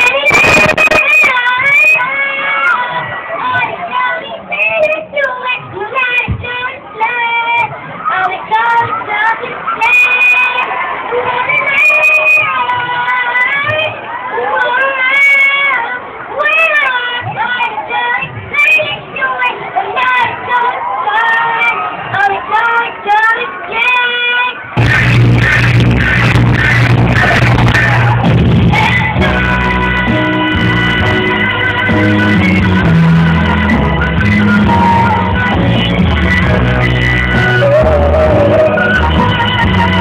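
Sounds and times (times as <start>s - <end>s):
high-pitched voice singing: 0.0s - 40.0s.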